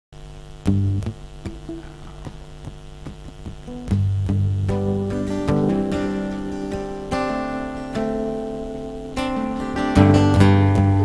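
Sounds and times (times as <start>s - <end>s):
electrical mains hum: 0.2s - 11.0s.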